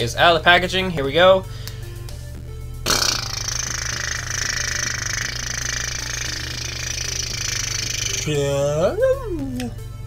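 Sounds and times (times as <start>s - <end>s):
low background music: 0.0s - 10.0s.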